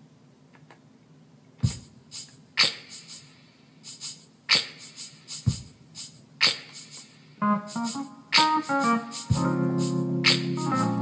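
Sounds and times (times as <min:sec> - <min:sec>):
electronic keyboard drum hits: 0:01.6 - 0:01.9, 0:07.7 - 0:11.0.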